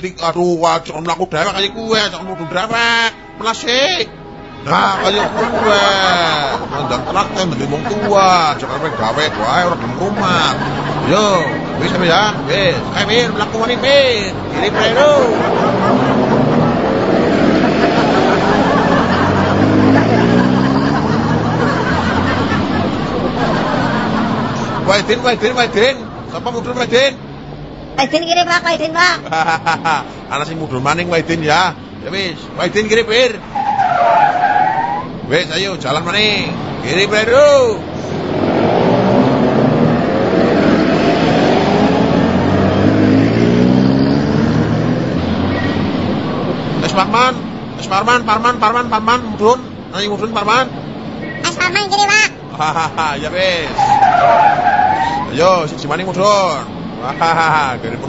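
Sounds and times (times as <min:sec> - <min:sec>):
bus engine running: 0:00.0 - 0:34.5, 0:35.1 - 0:58.0
road noise: 0:00.0 - 0:58.0.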